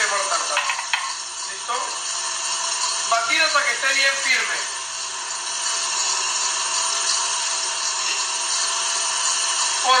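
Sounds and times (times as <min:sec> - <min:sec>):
stand mixer whisking in steel bowl: 0:00.0 - 0:10.0.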